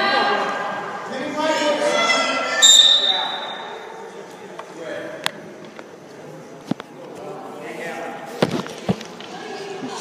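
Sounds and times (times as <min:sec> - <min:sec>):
low background voices: 0:03.5 - 0:10.0.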